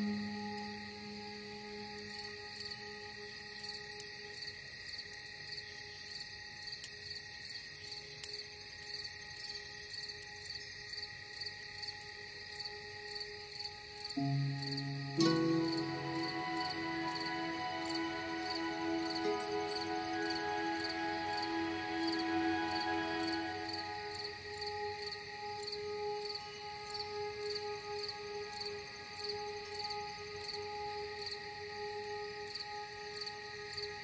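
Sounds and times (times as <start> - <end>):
crickets chirping: 0.0 - 34.0
slow ambient music: 0.0 - 34.0.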